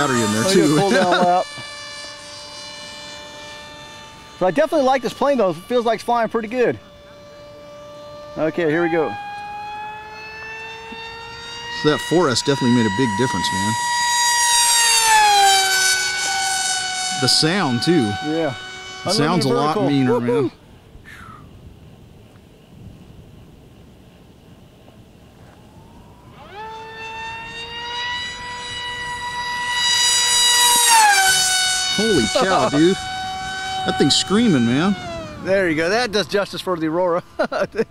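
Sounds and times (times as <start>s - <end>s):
model plane motor whine: 0.0s - 20.6s, 24.7s - 37.5s.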